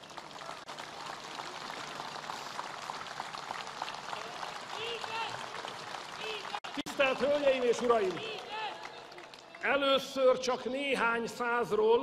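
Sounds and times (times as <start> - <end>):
crowd applauding: 0.0 - 10.1.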